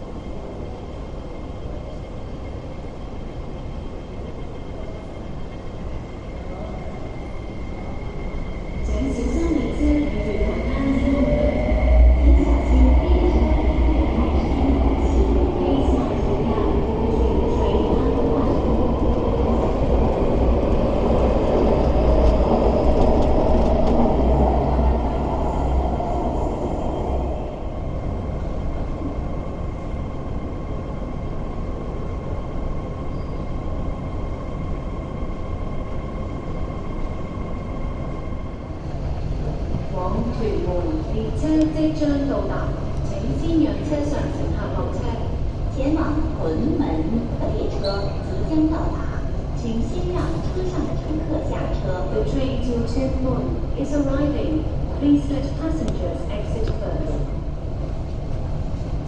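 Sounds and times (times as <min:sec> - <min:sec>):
electric train rumble: 0:00.0 - 0:59.0.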